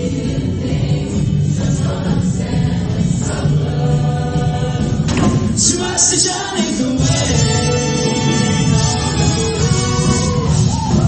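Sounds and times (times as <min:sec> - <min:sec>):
choir singing with accompaniment: 0:00.0 - 0:11.0.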